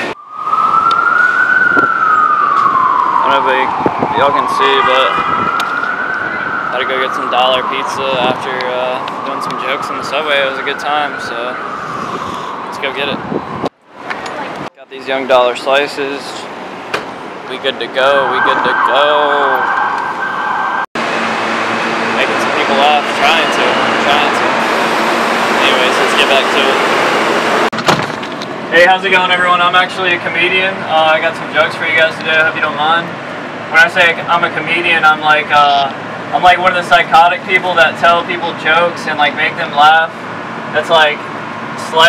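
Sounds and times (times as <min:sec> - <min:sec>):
emergency siren wailing: 0:00.0 - 0:13.7, 0:18.0 - 0:27.7
city street traffic: 0:00.0 - 0:42.0
subway station din: 0:21.0 - 0:27.7.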